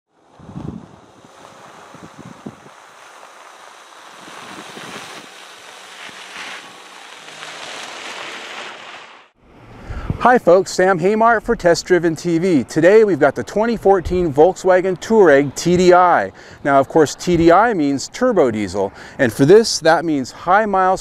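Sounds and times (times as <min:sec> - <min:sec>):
wind buffeting microphone: 0:00.2 - 0:06.9.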